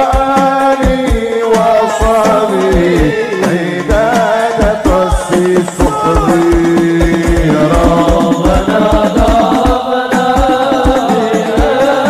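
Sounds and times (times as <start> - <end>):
person chanting a devotional song: 0.0 - 12.0
repeated drum beat: 0.0 - 12.0.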